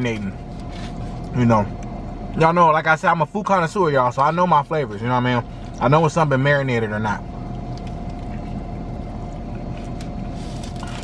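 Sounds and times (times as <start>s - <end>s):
car engine running low rumble: 0.0s - 11.0s
faint chewing clicks: 7.4s - 8.6s.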